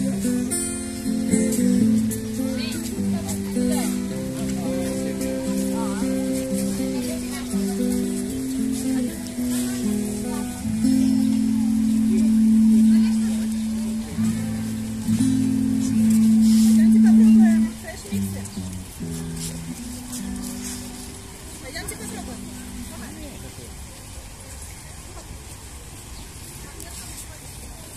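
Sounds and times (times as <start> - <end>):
acoustic guitar: 0.0 - 23.5
faint voices of people: 0.0 - 27.9.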